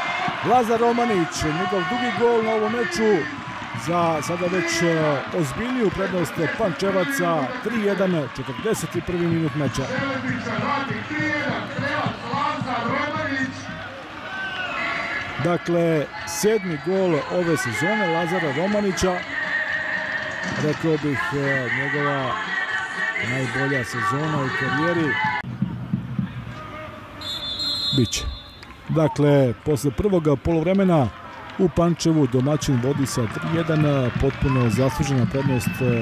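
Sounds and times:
stadium background noise: 0:00.0 - 0:36.0
referee's whistle blast: 0:27.2 - 0:28.8.

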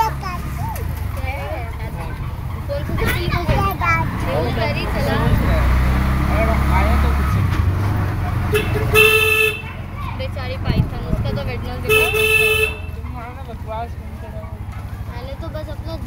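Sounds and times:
vehicle engine and road rumble: 0:00.0 - 0:16.0
voices: 0:00.0 - 0:16.0
vehicle horn honking: 0:08.5 - 0:09.9, 0:11.8 - 0:13.0.

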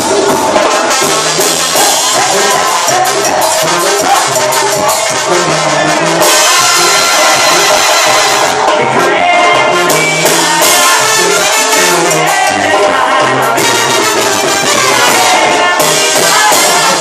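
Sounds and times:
brass band music: 0:00.0 - 0:17.0
drums: 0:00.0 - 0:17.0
tuba: 0:00.0 - 0:17.0.

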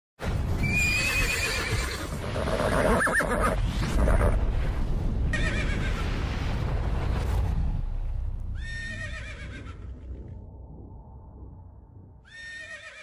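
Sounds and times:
horse whinnying: 0:00.6 - 0:04.4, 0:08.6 - 0:09.9, 0:12.3 - 0:13.0.

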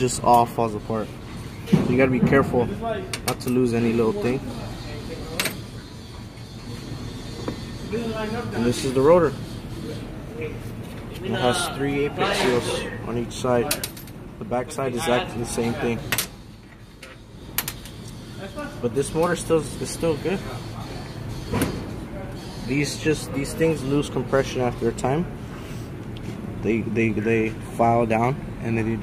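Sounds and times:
low background noise: 0:00.0 - 0:29.0.

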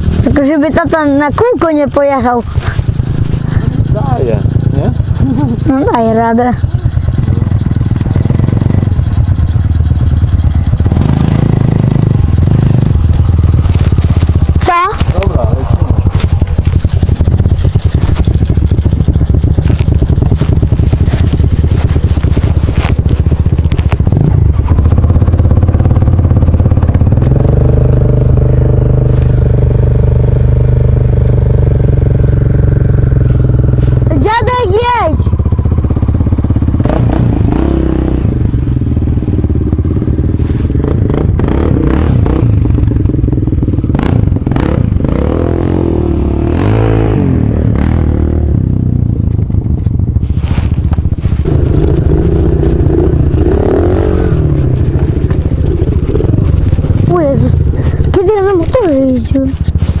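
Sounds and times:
dirt bike engine revving: 0:00.0 - 1:00.0.

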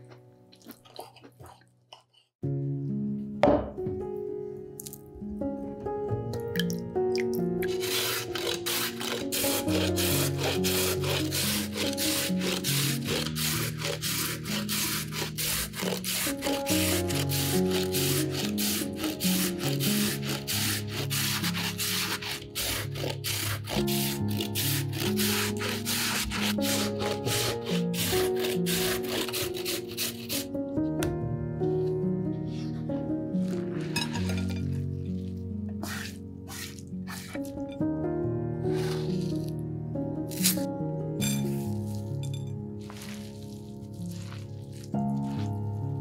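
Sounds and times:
background music: 0:02.4 - 0:46.0
potato grated on metal grater: 0:07.6 - 0:30.5, 0:35.8 - 0:37.8, 0:38.7 - 0:39.4.

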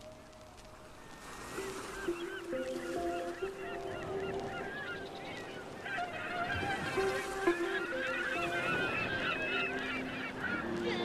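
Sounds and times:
flock of birds honking and chirping: 0:00.1 - 0:11.0.

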